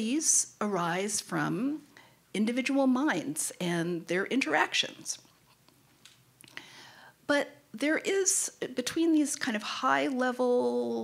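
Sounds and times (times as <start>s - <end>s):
woman speaking: 0.0s - 5.2s, 7.3s - 11.0s
soft in-breath: 6.5s - 7.2s.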